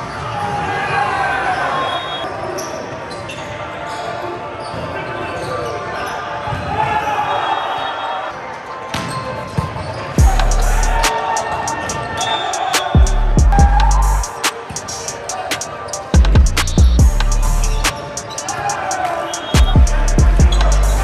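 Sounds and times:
players shouting in a gymnasium: 0:00.0 - 0:16.3, 0:17.9 - 0:21.0.

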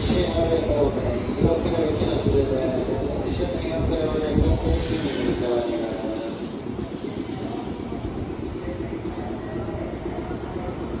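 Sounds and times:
electric train rumbling: 0:00.0 - 0:11.0.

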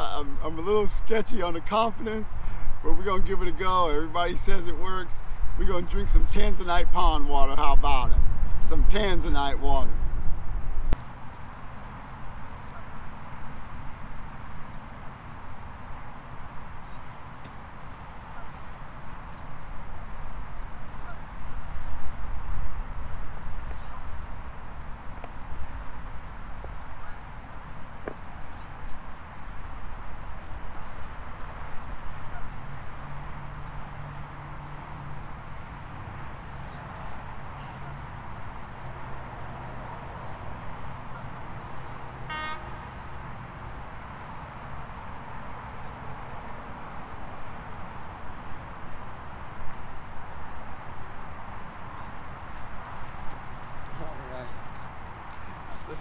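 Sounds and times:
short honk: 0:42.2 - 0:43.1.

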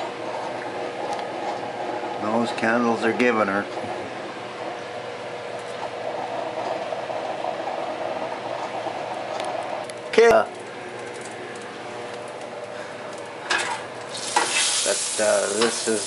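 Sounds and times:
egg sizzling in a pan: 0:14.1 - 0:16.0.

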